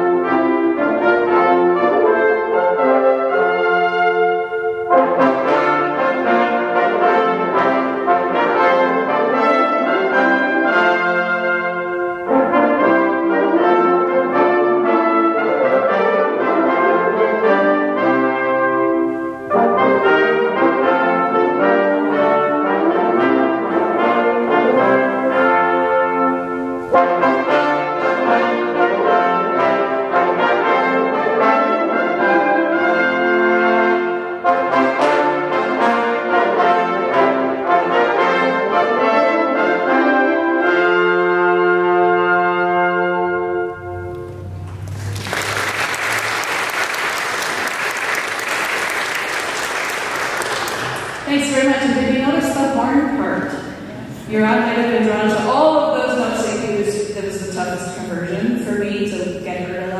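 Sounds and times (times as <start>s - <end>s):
brass quintet playing: 0.0s - 59.9s.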